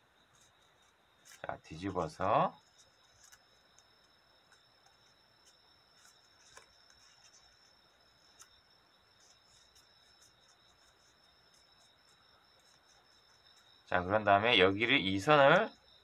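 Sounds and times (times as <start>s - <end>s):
faint high-pitched whine: 0.0s - 16.0s
paper being folded: 0.2s - 15.9s.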